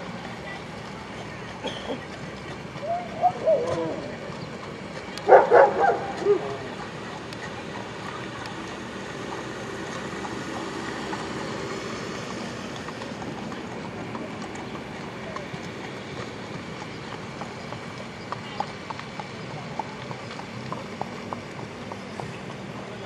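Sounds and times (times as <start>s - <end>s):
hoofbeats cantering on sand: 0.0s - 23.0s.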